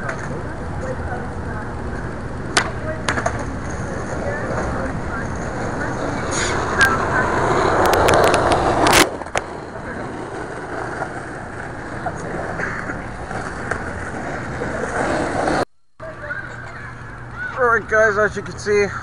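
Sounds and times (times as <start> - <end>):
skateboard clack: 0.0 - 15.6
skateboard wheels rolling on concrete: 0.0 - 16.8.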